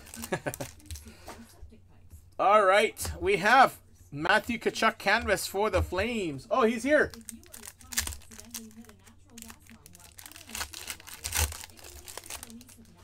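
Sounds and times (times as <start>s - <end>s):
foil wrapper crinkling: 0.0s - 1.2s, 6.8s - 13.0s.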